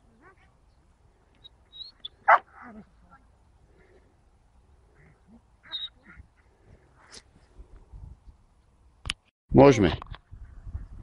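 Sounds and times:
dog barking: 2.3s - 2.7s.

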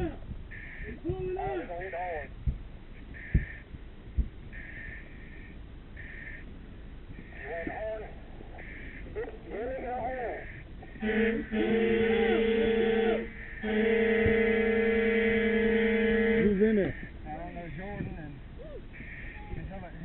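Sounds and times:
air horn blasts: 10.4s - 17.1s.

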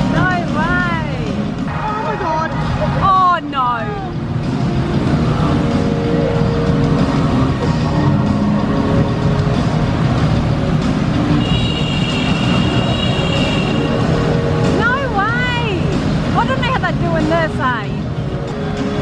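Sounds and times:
motorcycle engines roaring: 0.0s - 19.0s
music playing: 0.0s - 19.0s.

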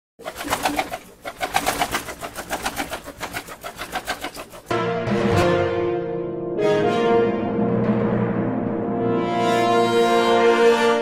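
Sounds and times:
bird wings flapping: 0.2s - 4.7s.

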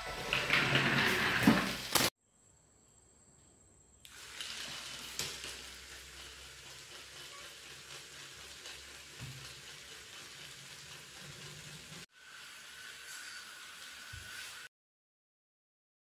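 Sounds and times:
toy motor whirring: 4.1s - 12.1s.

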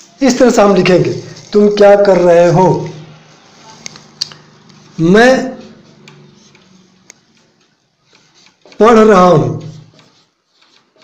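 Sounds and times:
marker pen writing on whiteboard: 0.7s - 11.0s.

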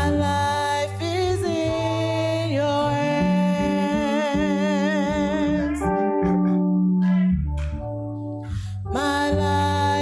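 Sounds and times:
keyboard chords: 0.0s - 10.0s.

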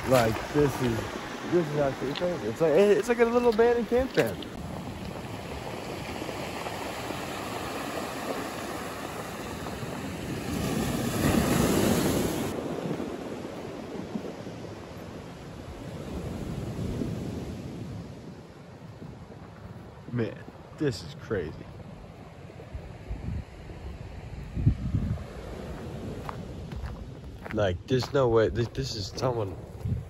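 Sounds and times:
surf washing on rocky shore: 0.0s - 21.9s.

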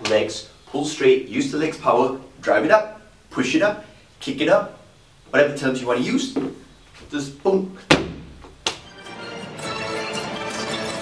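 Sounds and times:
sharp knock: 7.9s - 8.8s
background music: 8.8s - 11.0s.

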